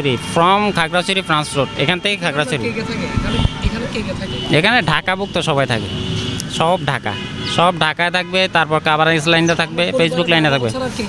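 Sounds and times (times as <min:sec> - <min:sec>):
man speaking: 0:00.0 - 0:03.4, 0:04.0 - 0:11.0
street noise: 0:00.0 - 0:11.0.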